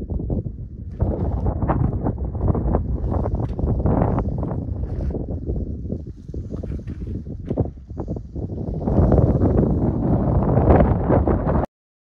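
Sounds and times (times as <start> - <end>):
wind buffeting microphone: 0.0 - 11.7.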